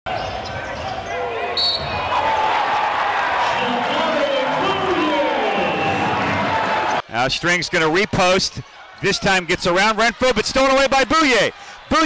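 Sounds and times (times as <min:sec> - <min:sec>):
voices echoing in gym: 0:07.2 - 0:12.0.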